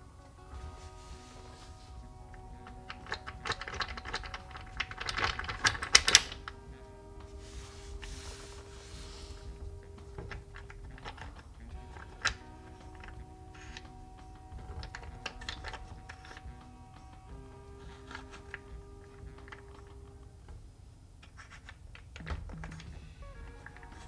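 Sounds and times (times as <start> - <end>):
soft background music: 0.0 - 24.0
wooden blocks clicking together: 1.3 - 6.6, 8.0 - 20.3, 21.2 - 24.0.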